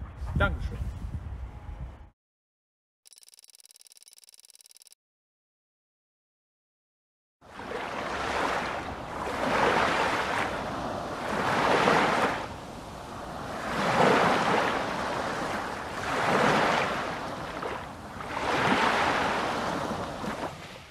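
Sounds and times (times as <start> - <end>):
waves washing in and out: 7.4 - 20.9.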